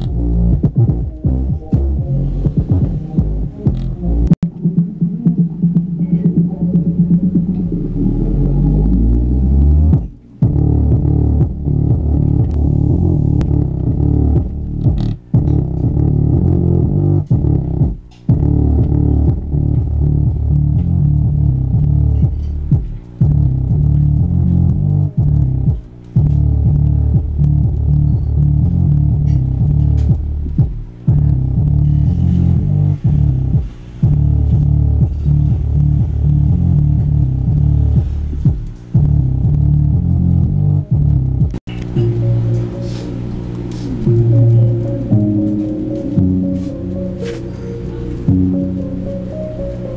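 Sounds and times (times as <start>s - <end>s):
bass-heavy electronic music: 0.0s - 49.9s
steady low hum: 0.0s - 49.9s.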